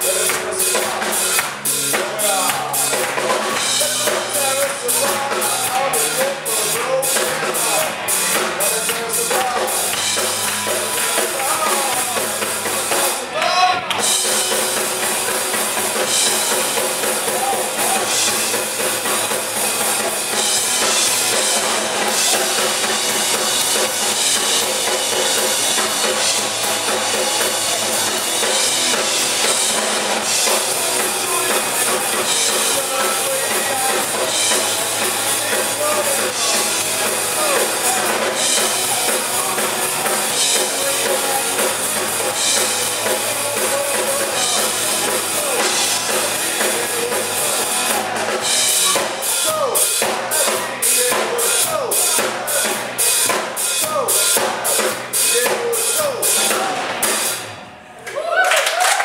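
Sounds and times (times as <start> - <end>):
drum hits: 0.0 - 57.4
live rock band playing: 0.0 - 57.8.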